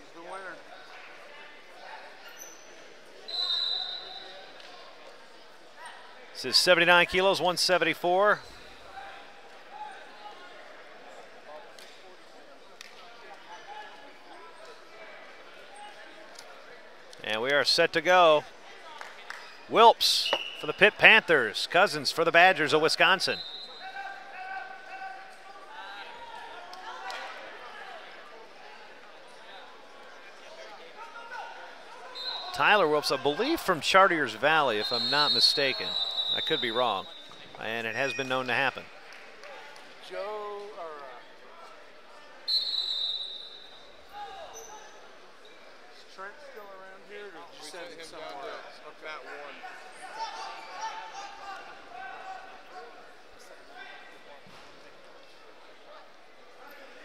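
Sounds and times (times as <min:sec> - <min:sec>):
voices calling out: 0:32.2 - 0:38.8.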